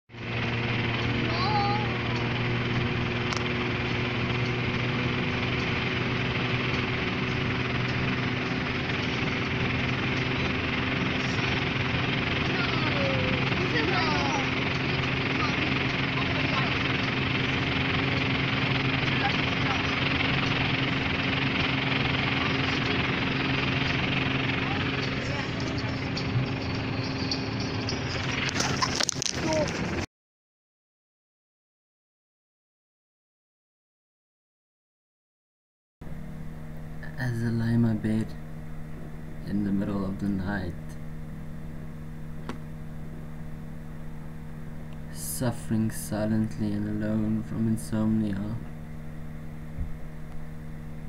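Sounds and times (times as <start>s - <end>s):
car road and engine noise: 0.1s - 30.1s, 36.0s - 51.0s.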